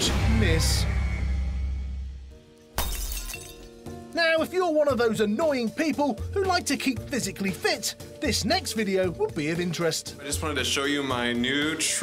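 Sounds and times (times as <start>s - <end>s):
music sting: 0.0s - 2.4s
glass shattering: 2.7s - 3.8s.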